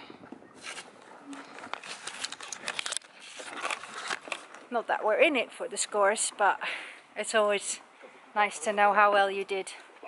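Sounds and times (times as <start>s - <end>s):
horse crunching feed: 0.6s - 4.8s.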